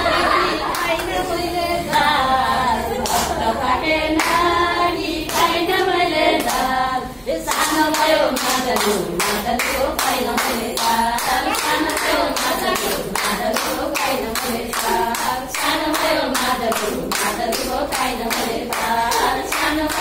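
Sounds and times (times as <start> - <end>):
women singing folk song: 0.0 - 20.0
hands clapping steady beat: 0.6 - 1.2, 3.0 - 3.5, 4.1 - 4.5, 5.2 - 5.8, 6.4 - 6.7, 7.5 - 20.0.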